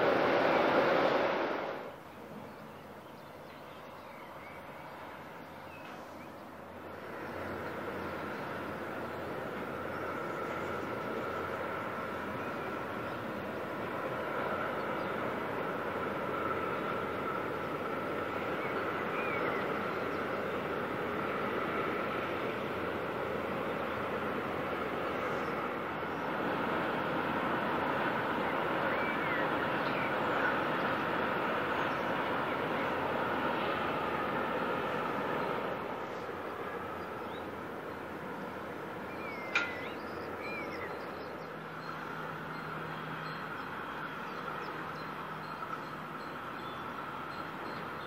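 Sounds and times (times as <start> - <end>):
distant freight train rolling: 0.0 - 48.0.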